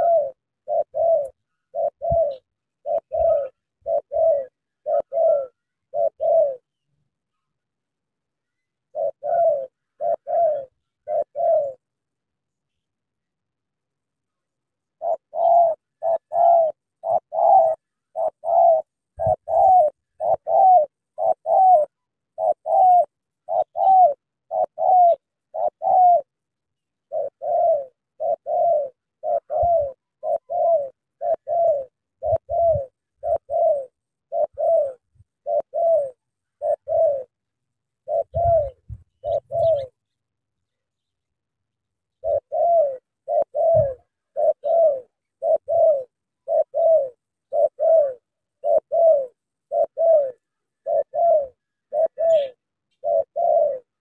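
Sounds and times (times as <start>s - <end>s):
doves cooing: 0.0s - 6.7s, 8.8s - 12.0s, 14.8s - 40.2s, 42.1s - 54.0s.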